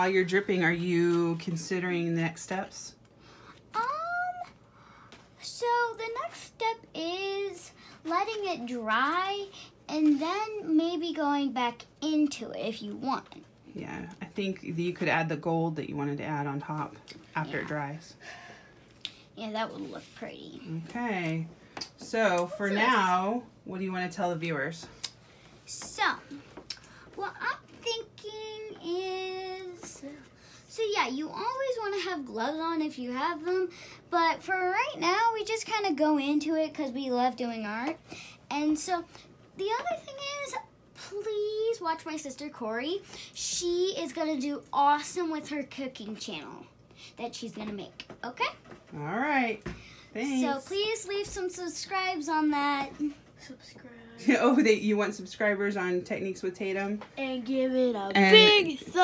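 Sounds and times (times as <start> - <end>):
girl speaking: 3.7 - 14.4, 19.2 - 21.5, 24.9 - 54.3, 57.0 - 59.0.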